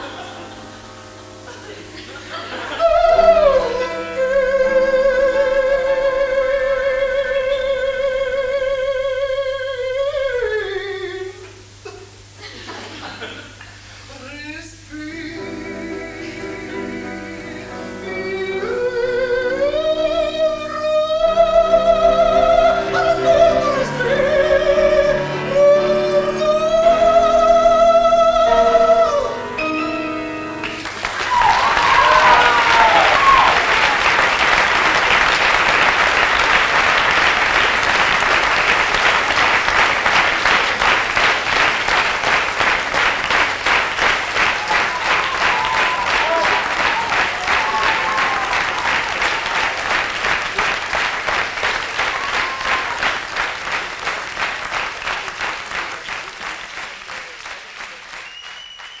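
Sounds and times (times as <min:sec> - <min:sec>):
audience applause: 0:30.6 - 0:59.0
audience cheering: 0:30.6 - 0:59.0.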